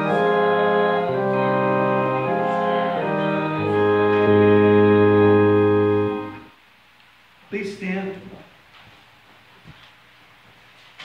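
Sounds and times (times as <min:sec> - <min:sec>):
organ holding a chord: 0:00.0 - 0:06.5.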